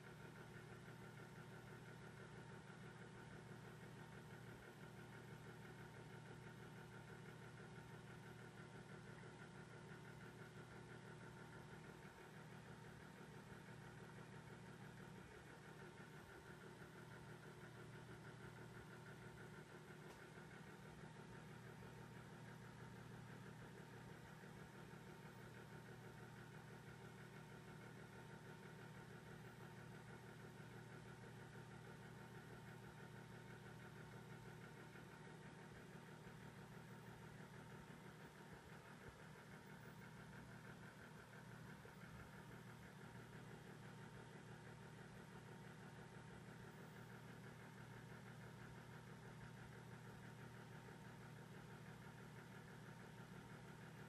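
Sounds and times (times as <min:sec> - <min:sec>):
faint steady hum with tones: 0:00.0 - 0:54.0.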